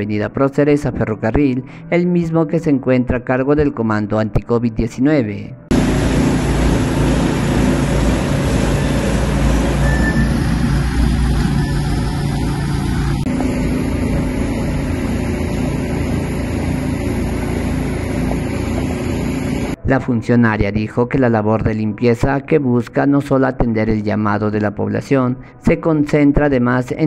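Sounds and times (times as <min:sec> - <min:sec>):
engine running with hum and hiss: 0:05.7 - 0:19.8.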